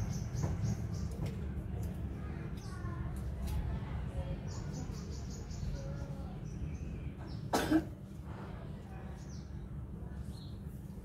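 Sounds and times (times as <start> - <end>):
person coughing: 7.5 - 7.9.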